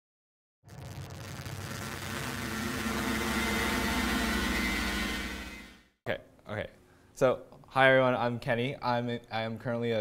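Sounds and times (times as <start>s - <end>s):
static hiss: 0.7s - 5.5s
buzzing drone of held tones: 0.7s - 5.8s.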